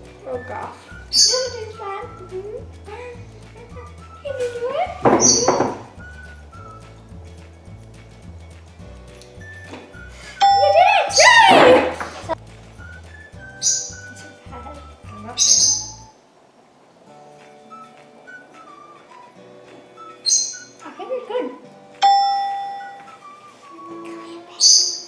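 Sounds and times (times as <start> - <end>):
background music with bass line: 0.0 - 15.5.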